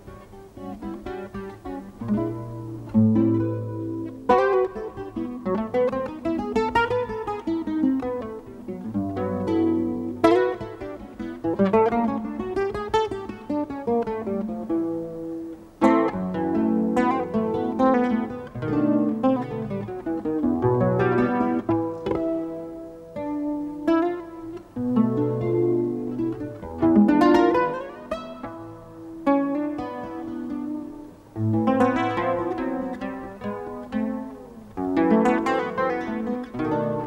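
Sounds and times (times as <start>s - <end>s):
acoustic guitar fingerpicking: 0.0s - 37.0s
guitar chords strummed: 0.0s - 37.0s.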